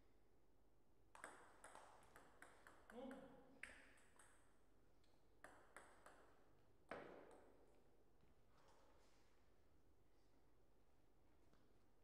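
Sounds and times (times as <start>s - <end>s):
ball bouncing: 1.1s - 4.4s, 5.4s - 6.3s, 6.9s - 7.5s.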